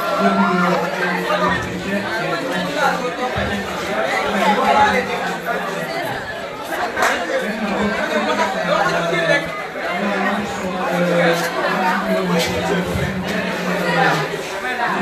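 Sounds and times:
crowd chatter in hall: 0.0 - 15.0.

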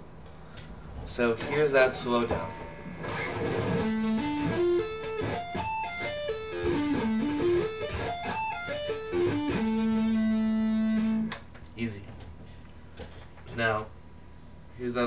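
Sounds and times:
electric guitar arpeggio: 2.6 - 11.3.

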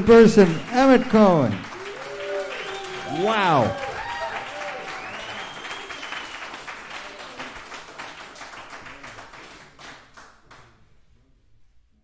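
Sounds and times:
audience applauding: 0.0 - 10.7.

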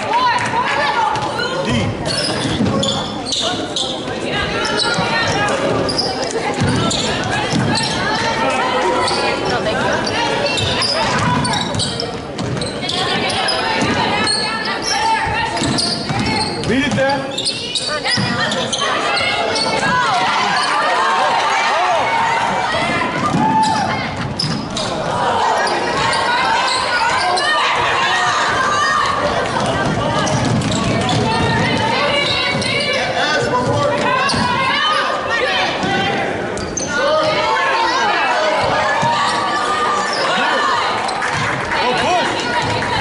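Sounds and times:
indistinct voices echoing: 0.0 - 43.0
sneakers squeaking: 0.2 - 21.4, 22.0 - 43.0.

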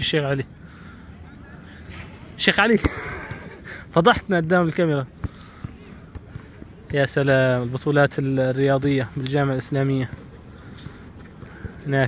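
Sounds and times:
basketball bouncing on hard court: 5.2 - 7.0.

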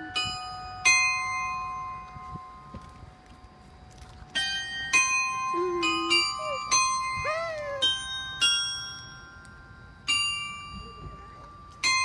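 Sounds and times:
clock tower bells ringing: 0.0 - 2.7, 4.3 - 12.0.

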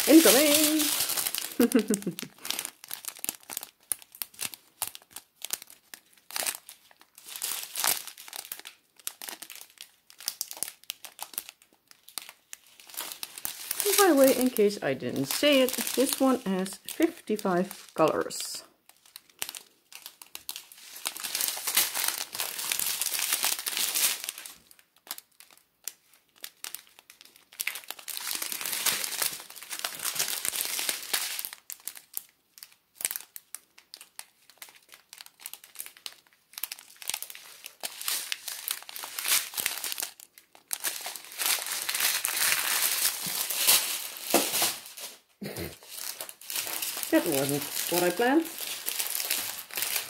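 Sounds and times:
plastic bags crinkling: 0.0 - 50.0.

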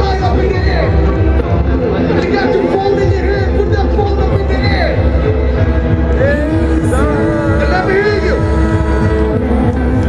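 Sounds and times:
hardstyle dance music: 0.0 - 10.0
voices over music: 6.2 - 10.0.

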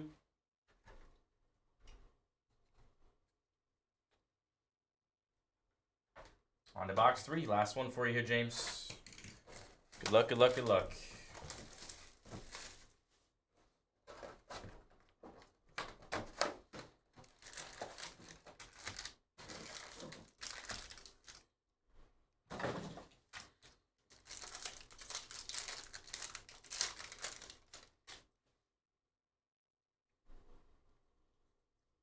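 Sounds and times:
foil packs rustling: 8.8 - 13.0, 16.2 - 21.4, 23.2 - 28.2
shrink wrap crinkling and tearing: 8.9 - 12.9, 16.8 - 21.5, 23.3 - 28.3.

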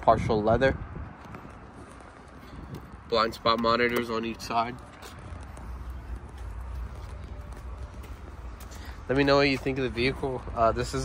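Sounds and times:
wind rumble on microphone: 0.0 - 11.0
footsteps on asphalt: 0.8 - 11.0.

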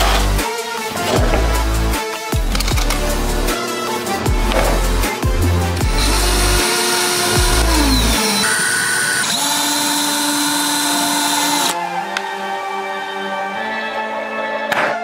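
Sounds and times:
electronic background music: 0.0 - 15.0
power drill boring through paper: 5.8 - 11.8.

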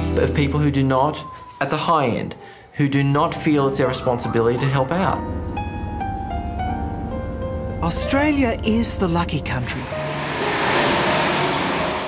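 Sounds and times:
car driving past: 9.7 - 12.0.

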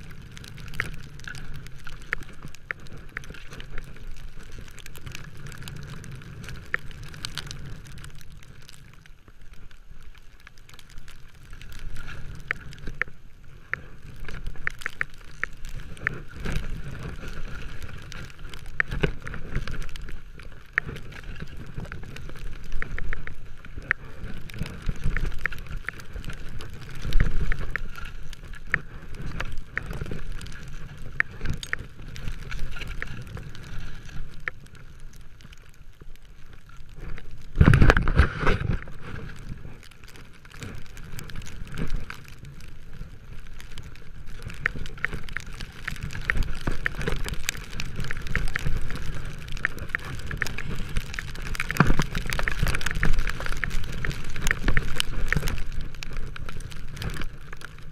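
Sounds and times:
skis sliding through snow: 0.0 - 57.9
small sharp clicks and knocks: 0.0 - 57.9.

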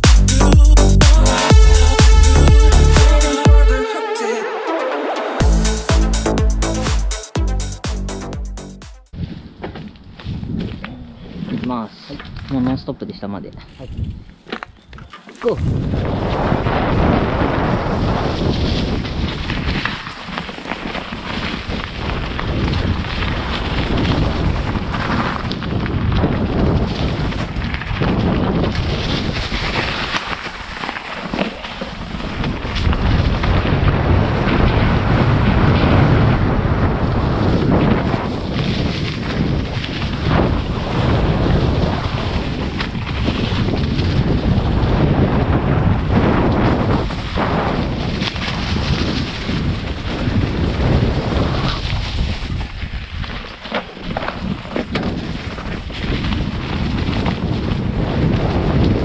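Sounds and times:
wind buffeting microphone: 9.1 - 13.2, 13.8 - 59.0
tyres crunching through dry leaves: 17.9 - 33.5, 37.4 - 45.0, 46.8 - 58.8
bike knocking over rough ground: 52.4 - 59.0.

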